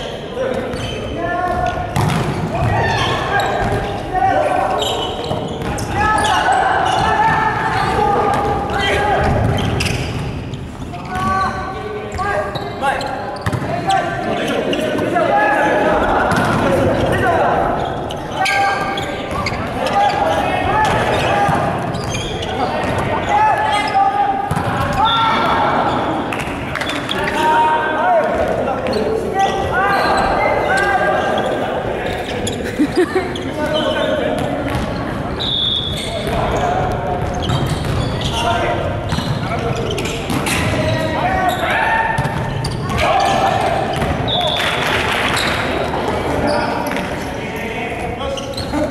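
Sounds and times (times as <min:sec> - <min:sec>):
players calling out and chatting: 0:00.0 - 0:48.9
volleyball struck and bouncing: 0:01.9 - 0:02.7.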